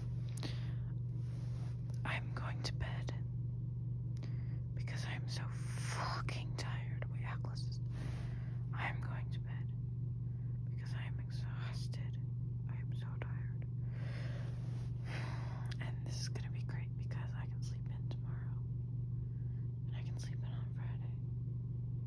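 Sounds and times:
steady low hum: 0:00.0 - 0:22.0
person whispering: 0:01.5 - 0:03.2, 0:08.7 - 0:09.6, 0:19.9 - 0:21.1.

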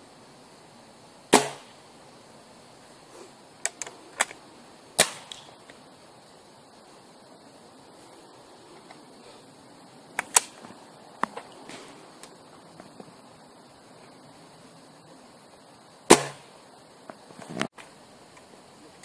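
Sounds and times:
air rifle firing: 0:01.3 - 0:01.8, 0:05.0 - 0:05.5, 0:16.1 - 0:16.5.

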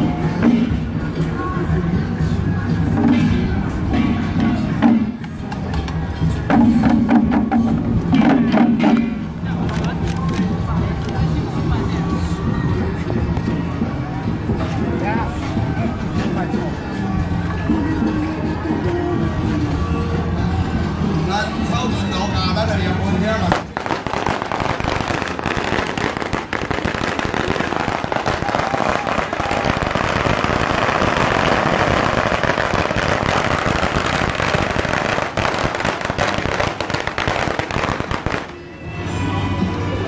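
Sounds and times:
music with low tones: 0:00.0 - 0:40.0
firecrackers crackling: 0:23.3 - 0:38.8.

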